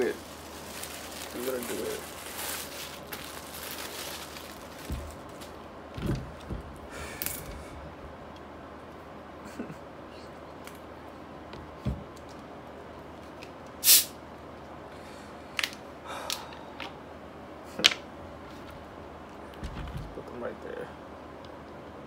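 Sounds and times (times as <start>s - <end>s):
short loud hiss: 13.8s - 14.2s.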